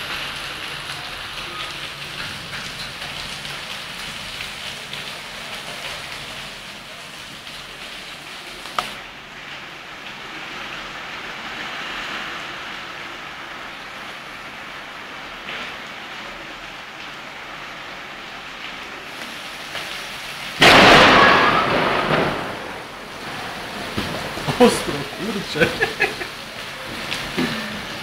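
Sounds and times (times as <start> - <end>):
heavy rain on pavement: 0.0 - 28.0
thunderclap rumbling: 20.5 - 28.0.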